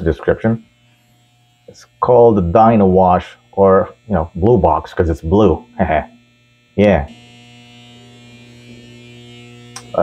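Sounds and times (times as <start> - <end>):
electrical mains hum: 0.0 - 10.0
sharp click: 9.7 - 10.0.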